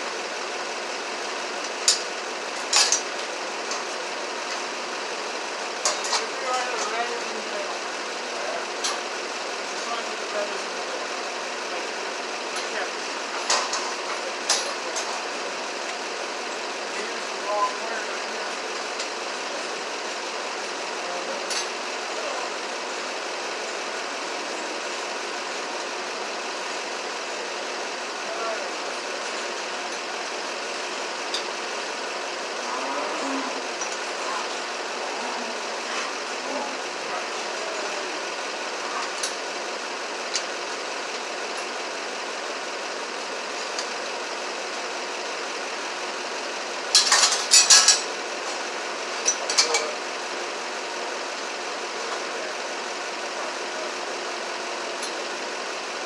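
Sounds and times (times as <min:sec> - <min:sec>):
steady mechanical drone: 0:00.0 - 0:56.0.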